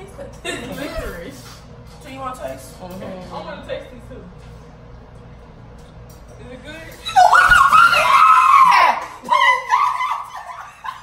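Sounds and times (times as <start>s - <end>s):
girl shrieking: 7.0s - 10.6s.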